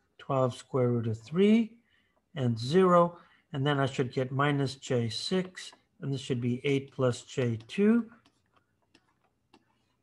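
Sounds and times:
stylus tapping tablet screen: 5.2s - 10.0s.

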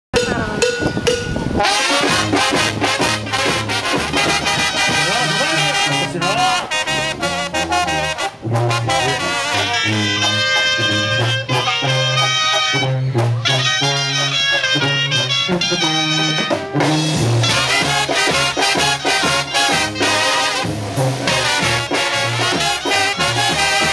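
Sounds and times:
steady drum beat: 0.1s - 23.9s
brass band playing: 0.2s - 23.9s.

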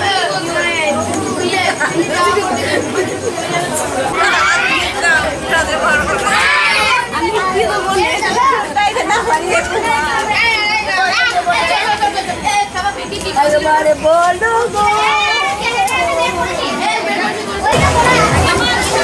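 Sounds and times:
women chattering: 0.0s - 19.0s.

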